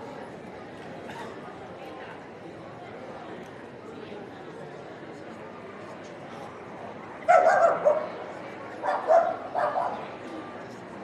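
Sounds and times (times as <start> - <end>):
dog barking: 7.3 - 8.1, 8.9 - 10.0.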